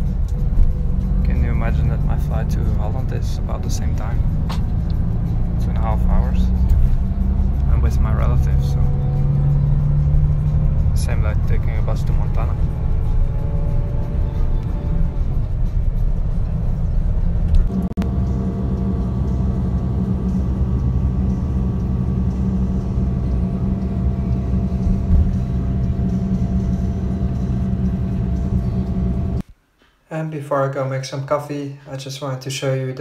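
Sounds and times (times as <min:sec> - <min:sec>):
bus engine rumble: 0:00.0 - 0:29.4
steady hum: 0:00.0 - 0:29.6.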